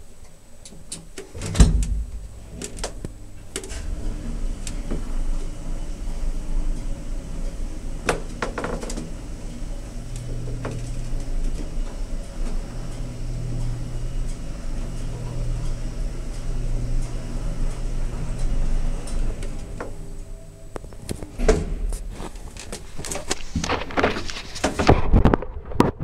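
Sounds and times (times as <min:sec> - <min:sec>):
lift car humming: 0:01.2 - 0:23.8.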